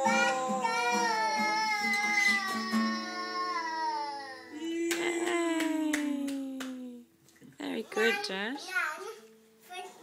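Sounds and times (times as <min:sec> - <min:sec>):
toddler singing a high note: 0:00.0 - 0:04.8.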